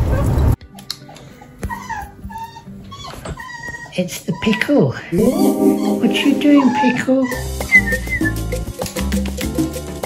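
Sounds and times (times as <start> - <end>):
dog whimpering: 0.0 - 8.4.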